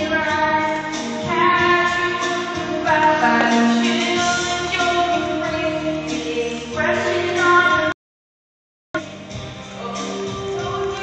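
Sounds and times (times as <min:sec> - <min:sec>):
karaoke backing music: 0:00.0 - 0:08.0, 0:09.0 - 0:11.0
person singing: 0:09.7 - 0:11.0.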